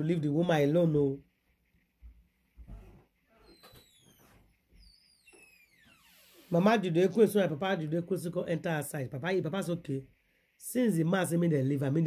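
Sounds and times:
faint high chirps: 3.3 - 6.5.

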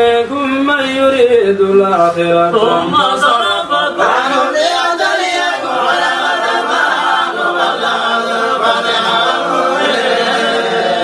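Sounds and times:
men chanting a cappella: 0.0 - 11.0.

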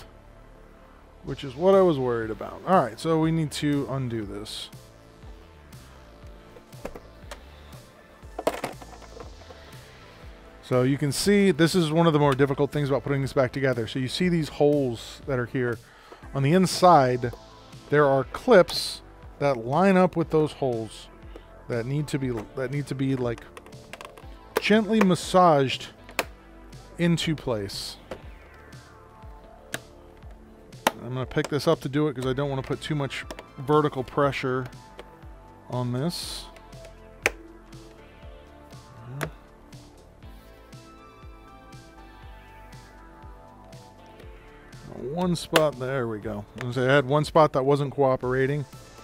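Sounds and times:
soft background music: 0.0 - 49.0.

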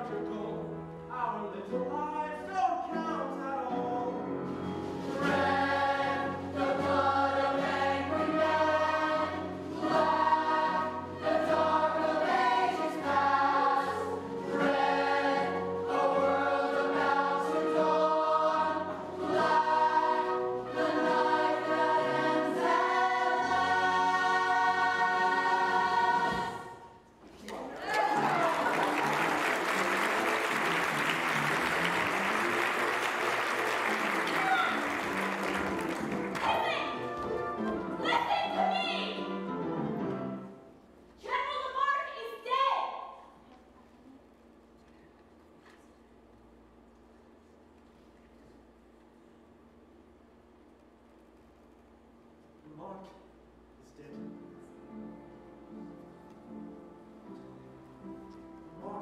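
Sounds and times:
audience applause: 27.6 - 36.7.

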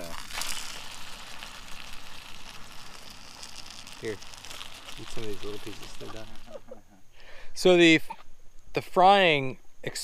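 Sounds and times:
chicken sizzling in oil: 0.0 - 6.6
foil rustling: 0.0 - 6.8.

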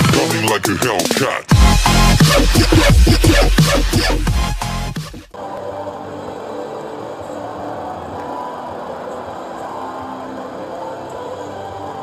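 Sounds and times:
crowd hubbub from stands: 5.3 - 12.0
faint music: 5.3 - 12.0.

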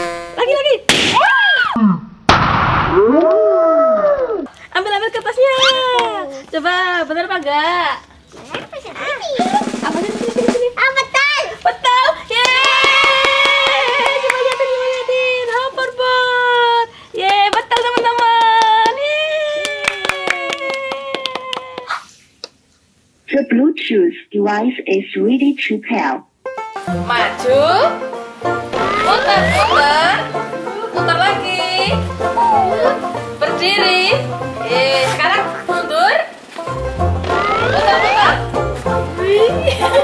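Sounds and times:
balloon bursting: 0.0 - 3.2, 28.7 - 30.1, 37.1 - 38.7
sudden loud burst of noise: 2.2 - 3.2, 28.7 - 30.0, 37.2 - 38.6
people cheering: 2.9 - 4.5, 12.3 - 15.5, 18.2 - 21.9, 28.8 - 30.3, 32.4 - 33.1, 37.2 - 38.6
rising-and-falling cry: 28.8 - 30.3, 32.2 - 33.2, 37.2 - 38.6.

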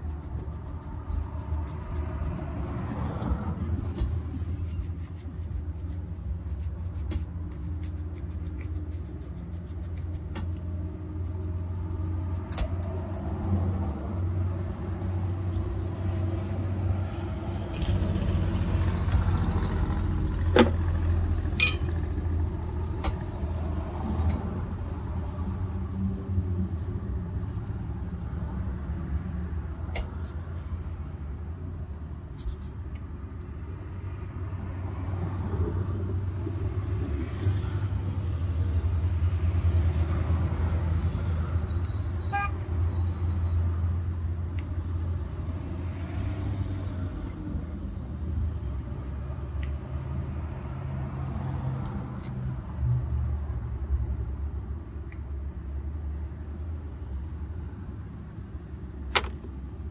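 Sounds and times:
city traffic rumble: 0.0 - 59.9.

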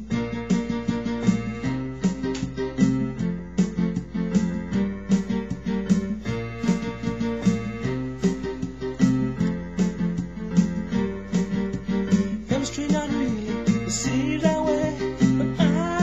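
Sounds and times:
electronic keyboard piano chords: 0.0 - 16.0.

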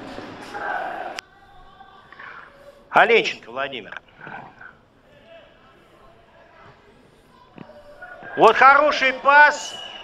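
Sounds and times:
distant voices outdoors: 0.0 - 10.0.

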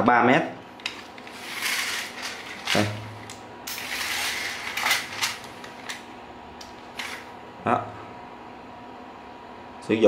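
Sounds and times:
line rustling out of reel: 0.9 - 2.9, 3.7 - 6.0.

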